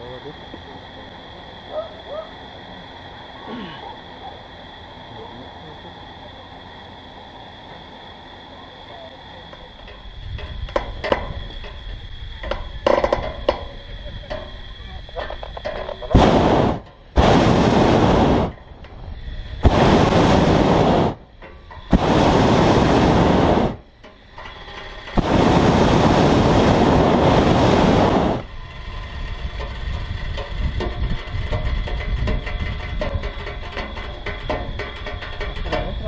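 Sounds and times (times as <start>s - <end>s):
propane burner blasts: 0.0s - 36.0s.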